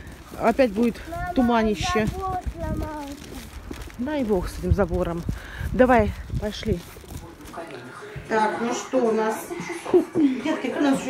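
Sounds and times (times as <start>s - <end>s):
woman talking: 0.4s - 2.2s, 4.0s - 11.0s.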